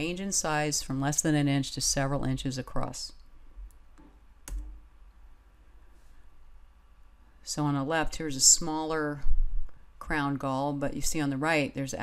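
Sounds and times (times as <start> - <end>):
sharp click: 3.7 - 4.8.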